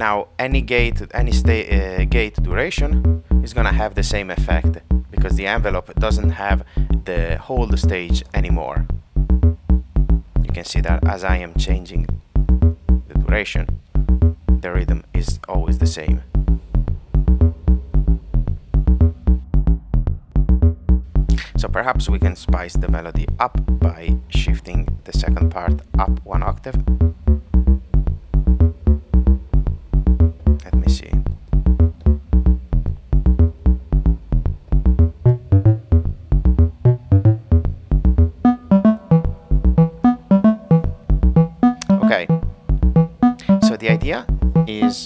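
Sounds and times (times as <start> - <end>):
synthesizer plucked notes melody: 2.5 - 11.3, 12.0 - 13.1, 17.2 - 18.3, 26.8 - 30.6, 31.6 - 45.0.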